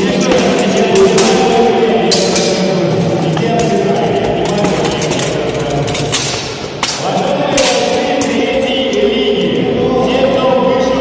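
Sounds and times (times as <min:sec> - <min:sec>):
weapons clashing on metal armour: 0:00.0 - 0:08.9.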